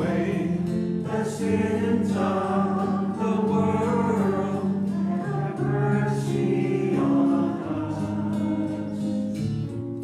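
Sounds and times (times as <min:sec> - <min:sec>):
choir singing a hymn: 0:00.0 - 0:09.3.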